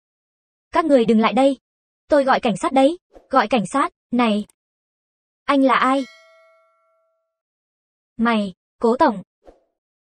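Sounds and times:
bright metallic ding: 5.8 - 7.4.

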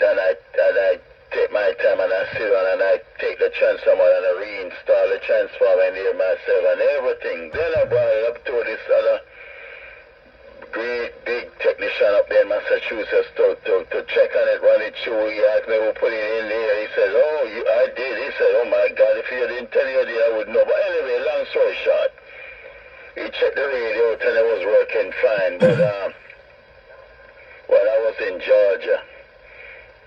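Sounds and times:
voice over two-way radio: 0.0 - 8.7, 23.2 - 26.2.

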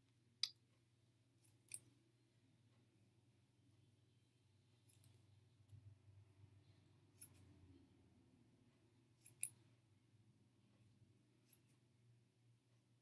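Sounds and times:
scissors snipping hair: 1.4 - 1.9, 9.2 - 9.6.

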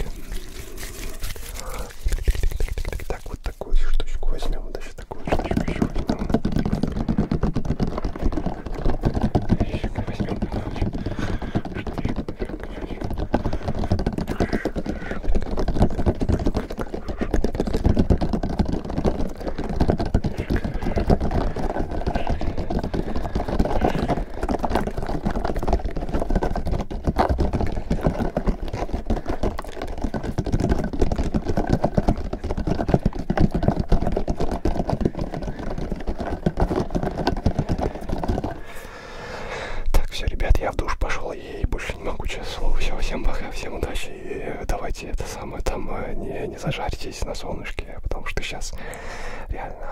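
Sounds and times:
plastic toy crackly clicks and taps: 5.0 - 38.6.

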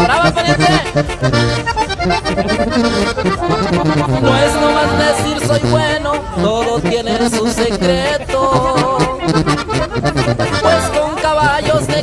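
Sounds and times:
accordion: 0.0 - 12.0
pulsing bass line: 0.5 - 6.6.

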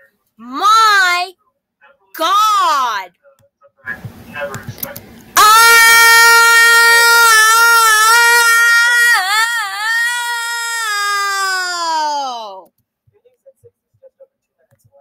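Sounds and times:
high-pitched voice wailing: 5.4 - 12.6.

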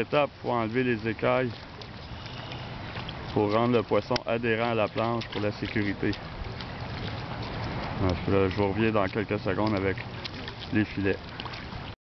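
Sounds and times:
water sloshing and rushing: 0.0 - 12.0
wind on microphone: 5.0 - 10.6.

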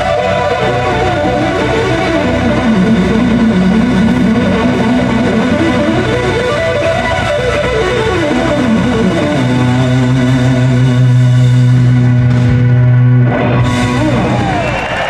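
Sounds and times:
blues-rock band playing: 0.0 - 15.0
electric guitar runs: 0.0 - 15.0.

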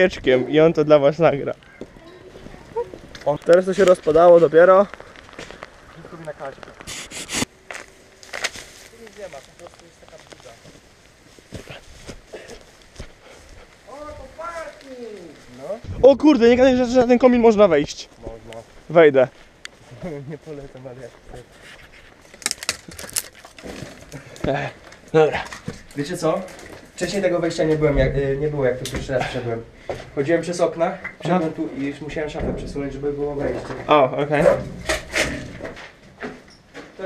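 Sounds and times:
sharp crackles: 1.5 - 27.7
leaves and grass rustling: 1.6 - 25.2.

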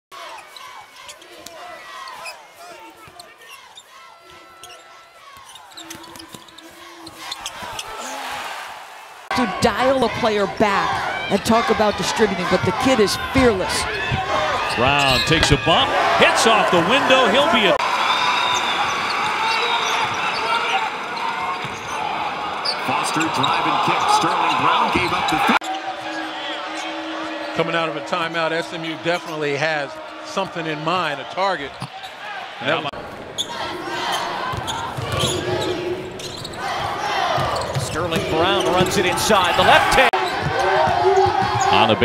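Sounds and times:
arena crowd noise: 0.1 - 42.0
sneakers squeaking: 0.2 - 8.4, 10.9 - 15.9, 18.4 - 27.4, 31.6 - 32.2, 33.2 - 42.0
faint shoe squeaks: 0.3 - 8.1.

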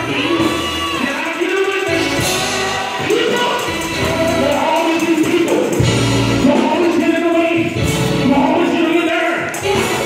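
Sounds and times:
other voices singing: 0.0 - 5.7
band playing: 0.0 - 10.0
man singing into microphone: 0.0 - 10.0.

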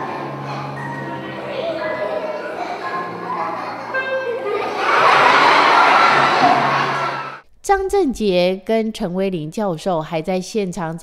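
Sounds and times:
children laughing and shouting: 0.0 - 7.4.

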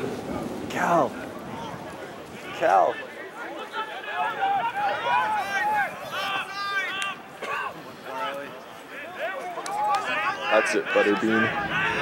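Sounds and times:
voices shouting and calling out: 0.0 - 12.0.

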